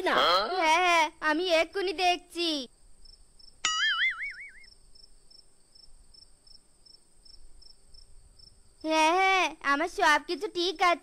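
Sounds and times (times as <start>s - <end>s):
cartoon character voice: 0.0s - 2.7s, 8.8s - 11.0s
crickets chirping: 0.0s - 11.0s
wavering whistle: 3.7s - 4.7s.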